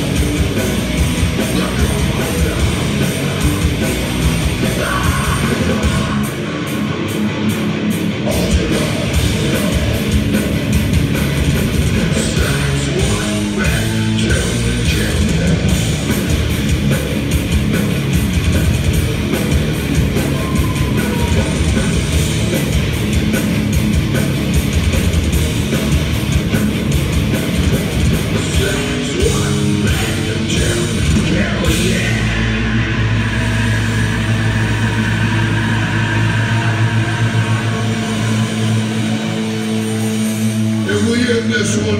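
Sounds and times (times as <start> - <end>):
heavy metal band playing live: 0.0 - 41.9.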